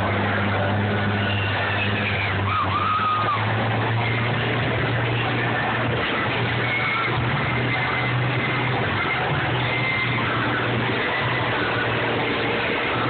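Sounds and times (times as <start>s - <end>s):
engines droning: 0.0s - 13.0s
higher rising and falling tone: 0.0s - 13.0s.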